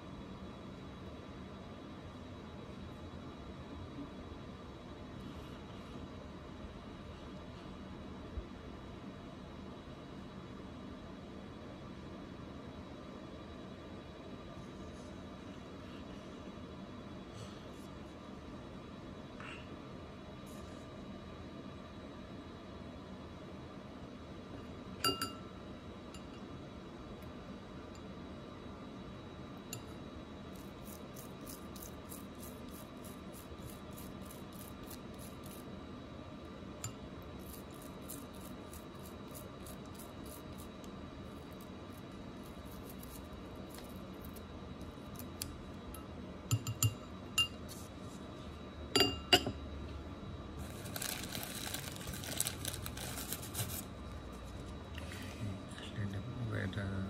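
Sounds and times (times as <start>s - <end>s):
ring clinking against glass bowl: 25.0s - 25.5s, 46.5s - 47.6s, 49.0s - 49.6s.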